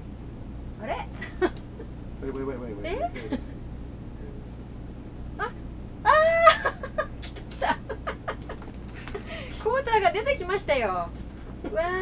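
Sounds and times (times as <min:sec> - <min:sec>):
laughter: 0:01.2 - 0:01.9, 0:03.2 - 0:03.6, 0:06.4 - 0:09.3.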